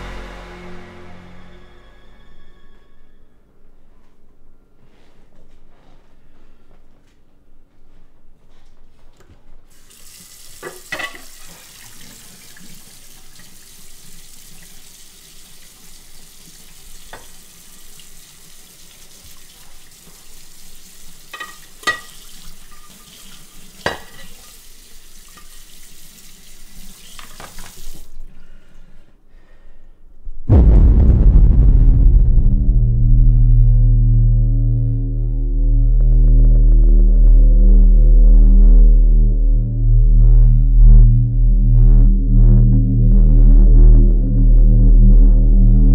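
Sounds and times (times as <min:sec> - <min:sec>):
loud deep droning tone: 0:00.0 - 0:03.4, 0:30.5 - 0:45.9
faucet water running into sink: 0:09.7 - 0:28.2.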